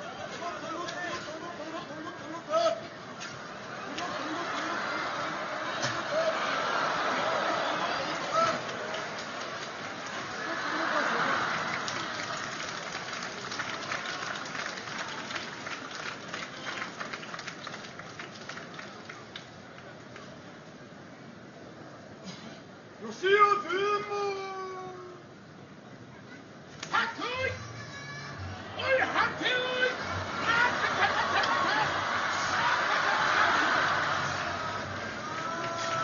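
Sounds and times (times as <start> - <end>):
scattered clapping: 3.2 - 20.3, 29.3 - 36.0
crowd cheering and shouting: 3.6 - 12.5, 26.9 - 36.0.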